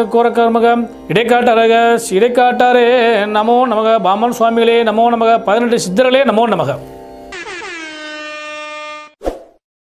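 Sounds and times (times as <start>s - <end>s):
sustained horn-like tone: 7.3s - 9.2s.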